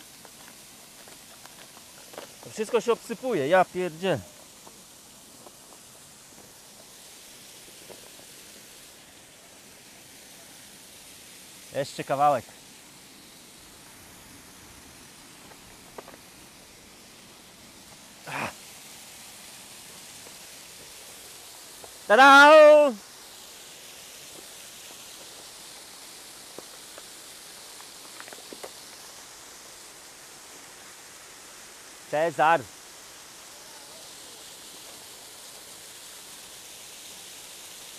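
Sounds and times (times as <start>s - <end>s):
distant waterfall hiss: 0.0s - 37.9s.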